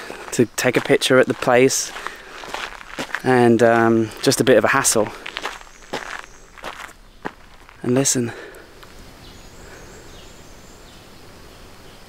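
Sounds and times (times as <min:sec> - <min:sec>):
footsteps: 0:00.0 - 0:09.0.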